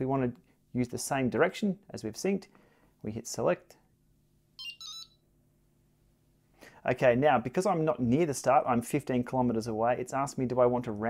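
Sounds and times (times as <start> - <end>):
electronic two-note alert beep: 4.6 - 5.2.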